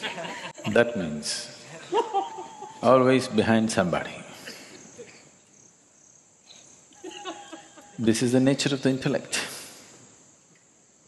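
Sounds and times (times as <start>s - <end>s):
insects chirring: 0.0s - 11.0s
man's voice: 0.6s - 2.0s, 2.8s - 4.4s, 8.0s - 9.7s.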